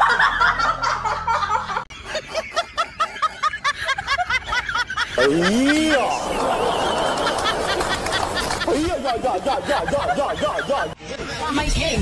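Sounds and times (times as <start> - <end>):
snickering laughter: 0.0 - 11.5.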